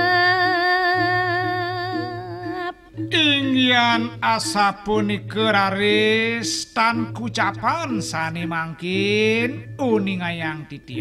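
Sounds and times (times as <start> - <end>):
person singing a long note: 0.0 - 5.0.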